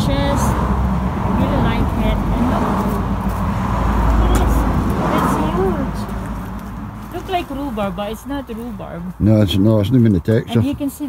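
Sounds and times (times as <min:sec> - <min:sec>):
steady low rumble: 0:00.0 - 0:09.6.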